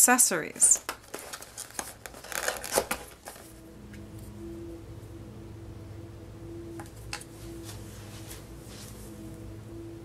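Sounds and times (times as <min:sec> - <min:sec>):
cardstock paper rustling: 0:00.6 - 0:03.5.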